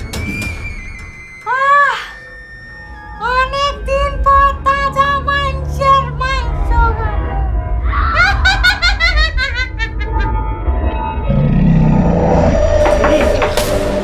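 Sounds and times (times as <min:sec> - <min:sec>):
low rumbling music: 0:02.4 - 0:14.0
woman cackling laugh: 0:08.2 - 0:10.3.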